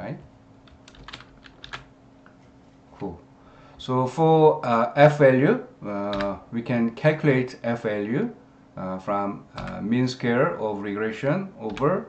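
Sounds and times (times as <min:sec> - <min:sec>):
keyboard keys clicking: 0:00.7 - 0:01.9, 0:06.1 - 0:06.4, 0:11.7 - 0:12.0.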